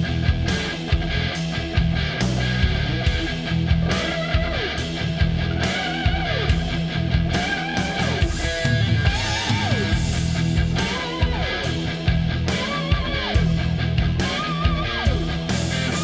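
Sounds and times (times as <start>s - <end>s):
bass and drums: 0.0s - 16.0s
fuzz electric guitar lead: 0.0s - 16.0s.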